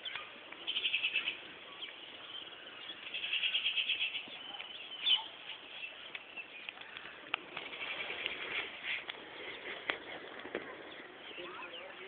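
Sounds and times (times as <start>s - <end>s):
faint bird chirps: 0.0s - 8.6s.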